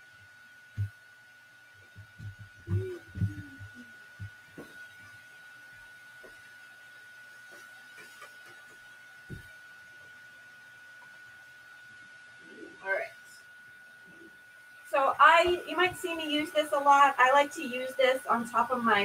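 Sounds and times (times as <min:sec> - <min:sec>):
faint high whine: 0:00.0 - 0:19.0.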